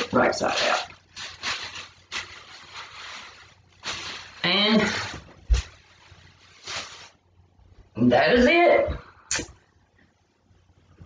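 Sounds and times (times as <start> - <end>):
plastic bag rustling: 0.0 - 7.7.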